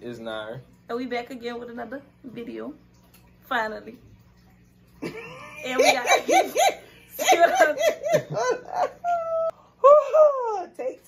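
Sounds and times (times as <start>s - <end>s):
women laughing hard: 5.0s - 9.5s.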